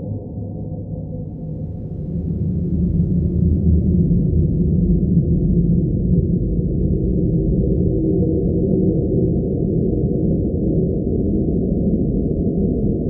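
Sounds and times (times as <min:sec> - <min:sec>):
dark ambient drone music: 0:00.0 - 0:09.8.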